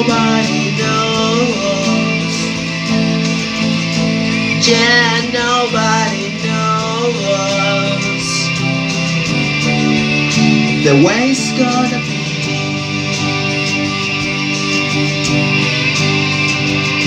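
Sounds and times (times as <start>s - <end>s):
man singing: 0.0s - 2.6s, 4.5s - 8.6s, 10.8s - 12.5s
electric guitar chords: 0.0s - 17.0s.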